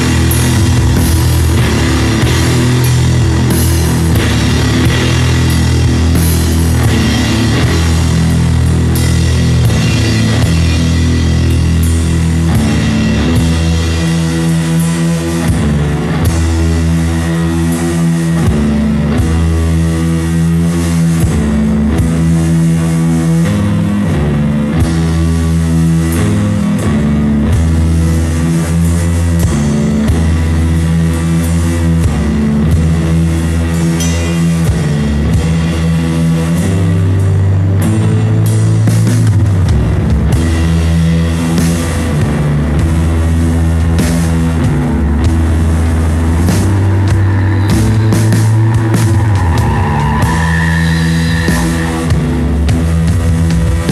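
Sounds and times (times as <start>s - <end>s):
garage rock song: 0.0s - 53.9s.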